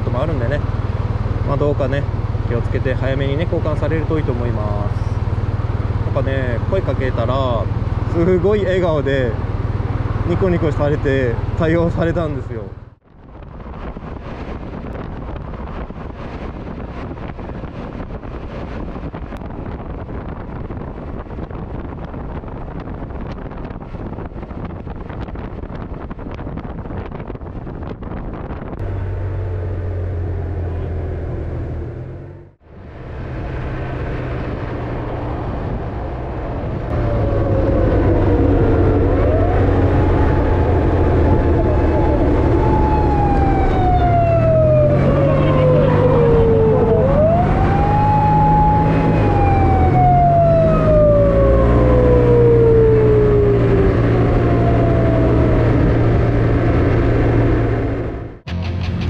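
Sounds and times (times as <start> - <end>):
motorcycle engine: 0.0 - 12.1, 28.8 - 59.0
wind noise: 13.0 - 59.0
police siren wailing: 36.6 - 57.4.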